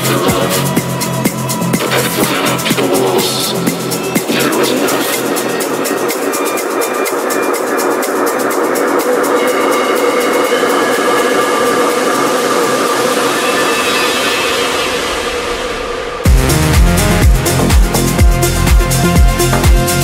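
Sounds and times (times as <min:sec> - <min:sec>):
fast ticking percussion: 0:00.0 - 0:14.2, 0:16.3 - 0:20.0.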